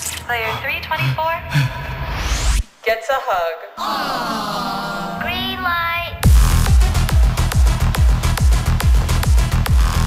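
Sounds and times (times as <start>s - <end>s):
electronic dance music: 6.1s - 10.0s
heavy bass line: 6.2s - 10.0s.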